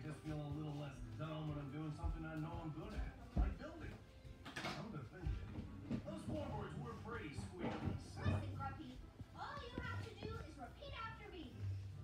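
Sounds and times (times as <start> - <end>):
background music: 0.0 - 12.0
cartoon voices talking on tv: 5.9 - 11.6.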